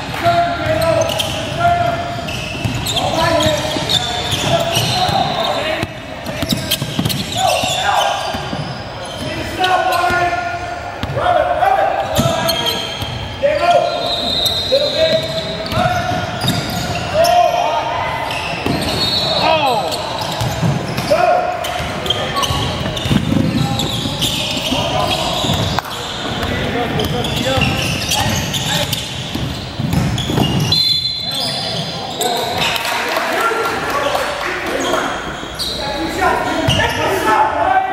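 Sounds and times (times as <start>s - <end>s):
sneakers squeaking on court: 0.0s - 10.4s, 11.0s - 11.2s, 11.9s - 32.8s, 34.7s - 37.2s
voices: 0.0s - 37.9s
basketball bouncing on wooden floor: 29.3s - 30.7s.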